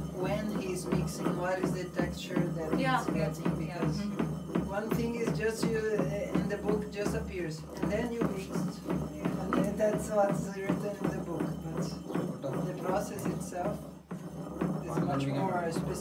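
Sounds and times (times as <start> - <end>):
background music with voice: 0.0 - 6.8
wooden pestle knocking in stone mortar: 0.0 - 16.0.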